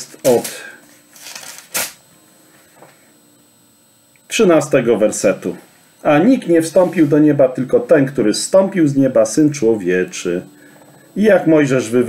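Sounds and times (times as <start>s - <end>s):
paper rustling: 0.3s - 2.0s.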